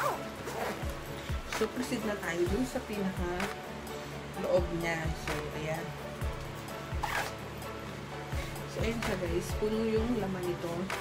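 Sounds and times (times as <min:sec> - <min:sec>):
zipper pulled open: 0:00.0 - 0:01.8, 0:07.0 - 0:07.4
background music: 0:00.0 - 0:11.0.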